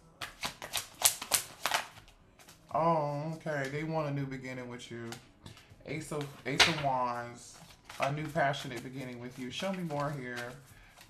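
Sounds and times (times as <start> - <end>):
cards clicking while shuffled: 0.2 - 2.6, 5.0 - 11.0.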